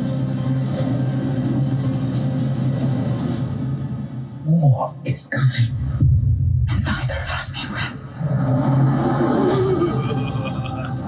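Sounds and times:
low music drone: 0.0s - 4.5s, 5.8s - 11.0s.

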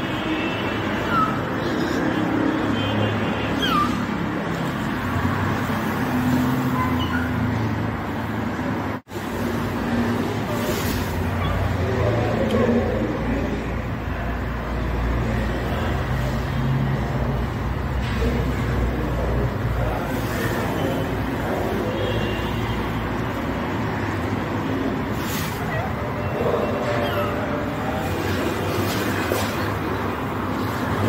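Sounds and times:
road traffic: 0.0s - 31.0s
faint voices: 10.1s - 31.0s.

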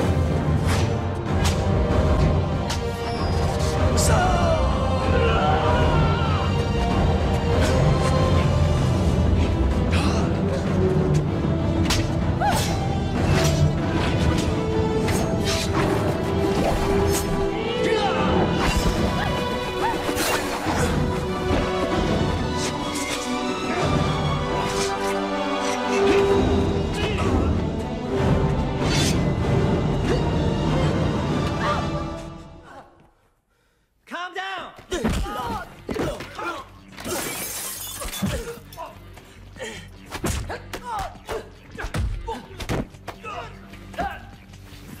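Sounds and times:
film score music: 0.0s - 34.1s, 34.7s - 45.0s
glass shattering: 37.1s - 38.4s.

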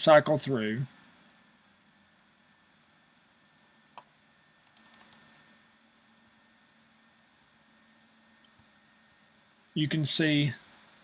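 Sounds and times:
computer keyboard keystrokes: 3.8s - 5.4s.

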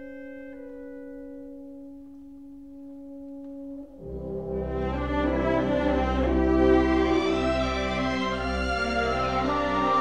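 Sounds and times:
full orchestra: 4.1s - 10.0s.

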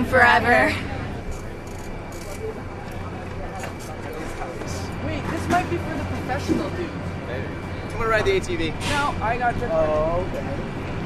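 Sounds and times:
people talking: 0.0s - 10.7s.

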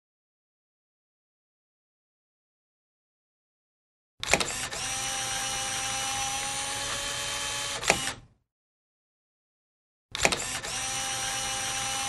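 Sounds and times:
tape winding whir: 4.2s - 8.3s, 10.1s - 12.0s.

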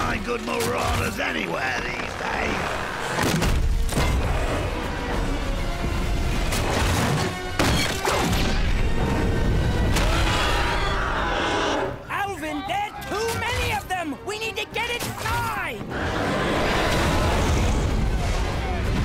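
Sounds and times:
film soundtrack music: 0.0s - 19.0s.

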